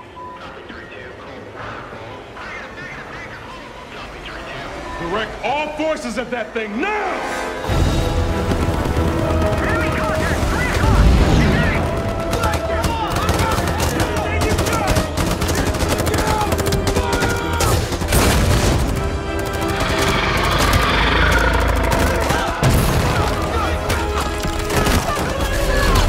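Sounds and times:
dramatic orchestral score: 0:03.6 - 0:26.0.

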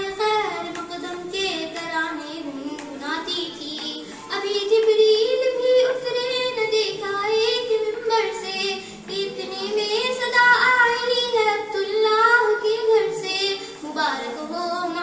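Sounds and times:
girl singing devotional song: 0:00.0 - 0:15.0.

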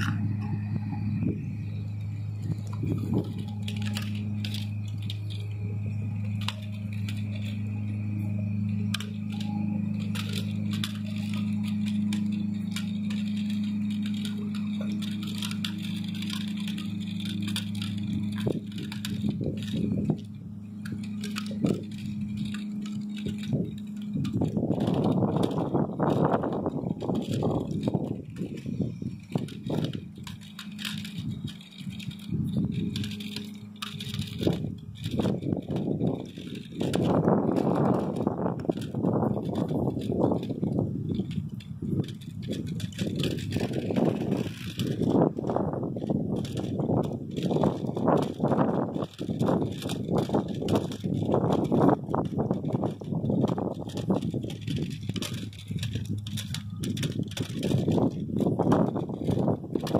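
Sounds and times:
crunching noise: 0:00.0 - 0:59.9
motor hum with high whine: 0:00.0 - 0:59.9
clicks and rattles: 0:02.0 - 0:59.9.

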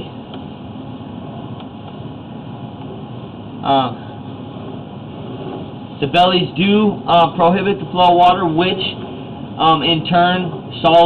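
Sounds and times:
machinery rumble and hiss: 0:00.0 - 0:11.0.

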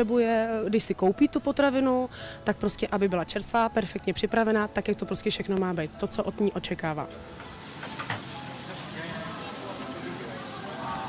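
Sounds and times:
sausages sizzling on a griddle: 0:07.3 - 0:11.0.

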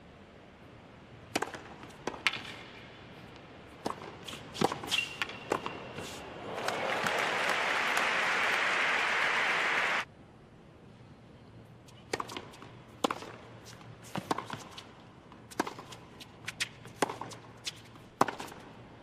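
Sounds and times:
tennis ball hits and bounces: 0:01.3 - 0:06.8, 0:12.0 - 0:18.7
crowd applause: 0:06.4 - 0:10.0.

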